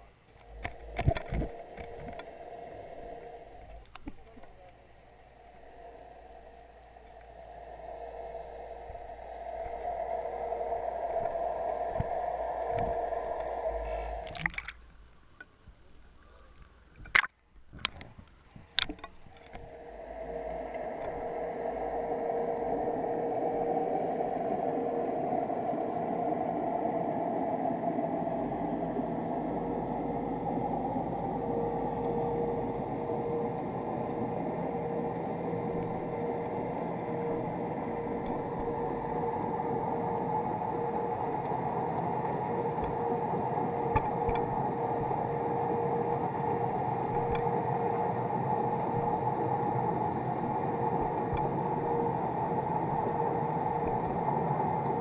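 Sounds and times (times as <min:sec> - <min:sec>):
muffled underwater noise: 0:00.0 - 0:14.8, 0:18.6 - 0:55.0
low steady hum: 0:00.0 - 0:55.0.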